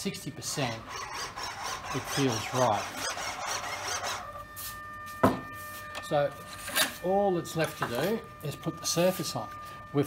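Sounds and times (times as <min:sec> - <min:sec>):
servo buzzing and whining: 0:00.4 - 0:07.0.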